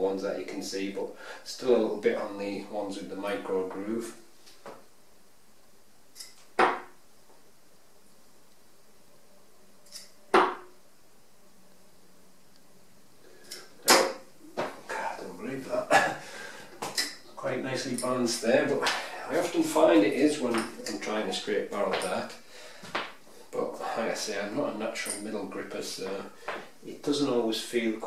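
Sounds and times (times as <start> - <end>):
darts thudding into dartboard: 6.6 - 7.0, 10.3 - 10.7, 13.8 - 14.7.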